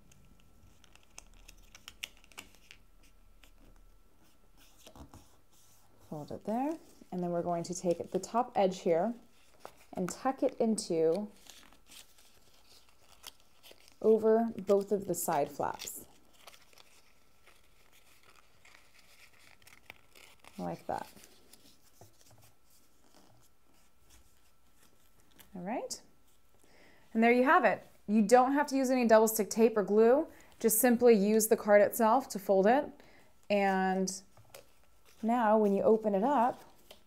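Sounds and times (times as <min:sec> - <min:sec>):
paper folding rustles and ticks: 0:00.0 - 0:08.6, 0:09.3 - 0:25.6.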